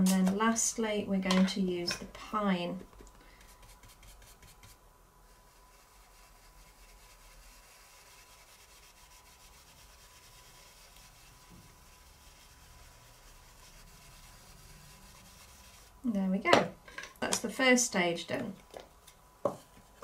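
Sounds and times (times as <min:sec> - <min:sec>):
stencil brush rubbing on card: 0:03.3 - 0:16.0.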